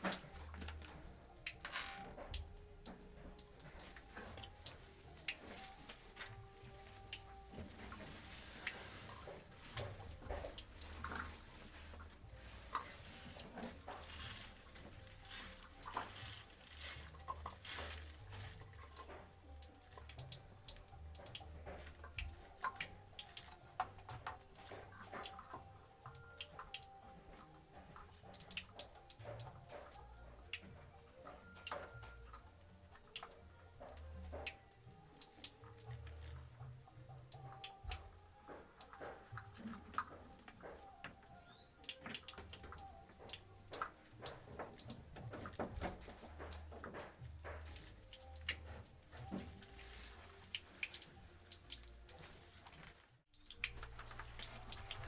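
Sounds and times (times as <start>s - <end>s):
water trickling into pond: 0.0s - 55.0s.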